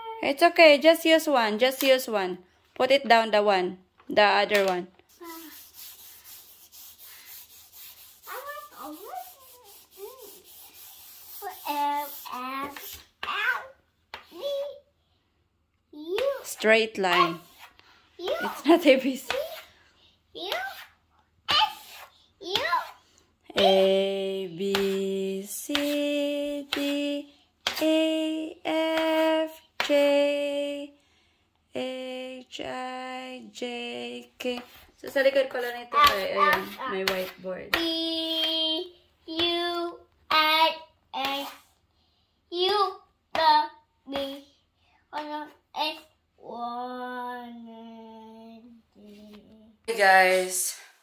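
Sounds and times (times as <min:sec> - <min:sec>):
chalk scribbling on chalkboard: 0:05.1 - 0:13.2, 0:17.1 - 0:19.8, 0:20.4 - 0:23.9, 0:24.7 - 0:25.0, 0:25.7 - 0:26.9, 0:34.4 - 0:38.6, 0:41.2 - 0:41.8.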